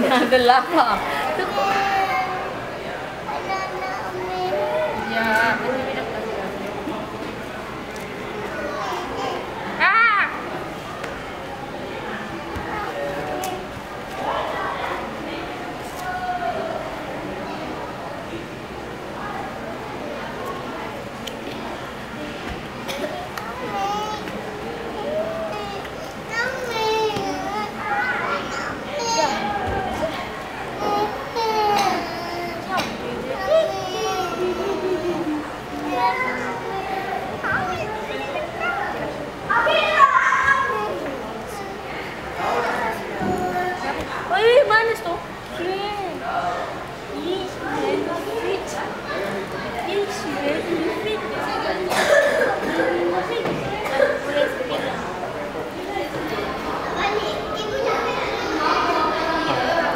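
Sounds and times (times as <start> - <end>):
children chattering: 0.0 - 59.9
children shrieking at play: 25.0 - 29.9, 38.6 - 41.0.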